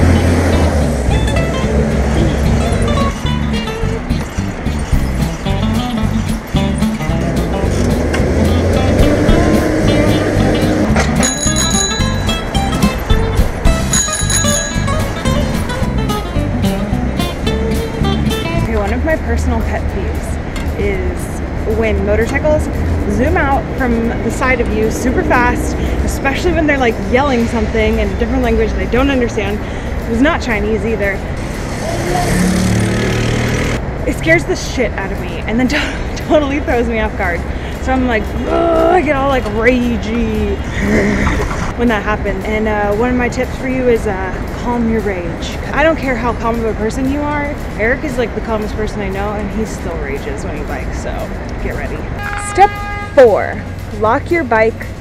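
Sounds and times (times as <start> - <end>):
background music with beat: 0.0 - 31.8
road noise: 0.0 - 55.0
vehicle engine humming: 0.0 - 55.0
bicycle bell ringing: 11.2 - 13.1, 13.7 - 15.8.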